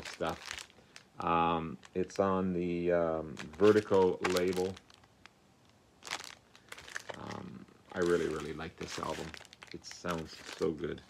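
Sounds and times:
plastic record sleeve crinkling: 0.0 - 11.0.

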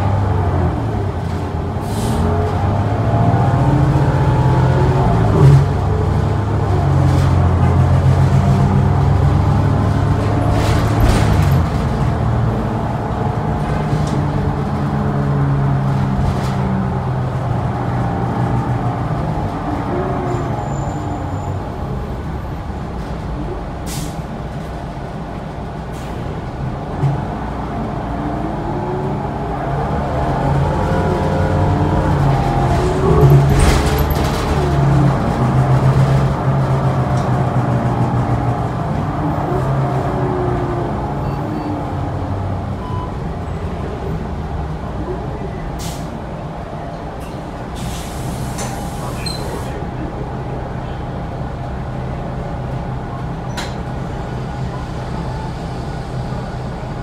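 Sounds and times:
bus engine and drivetrain: 0.0 - 57.0
clicks and knocks from bus body: 10.0 - 12.3.

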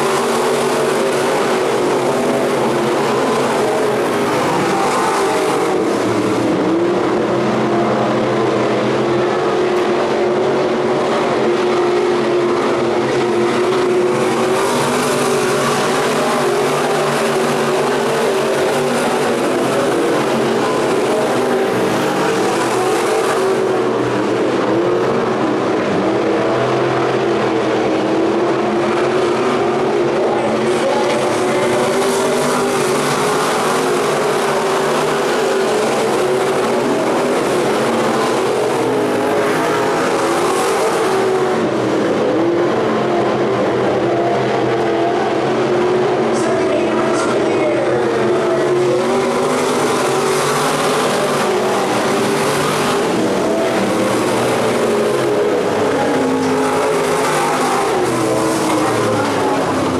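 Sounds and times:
race car engines droning: 0.0 - 59.9.

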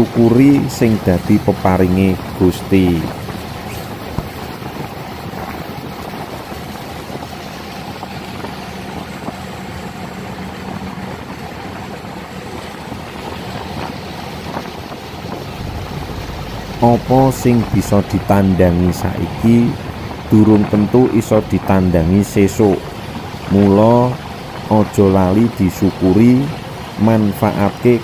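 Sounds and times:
boat engine running: 0.0 - 28.0
low hum: 0.0 - 28.0
water rushing along hull: 0.0 - 28.0.

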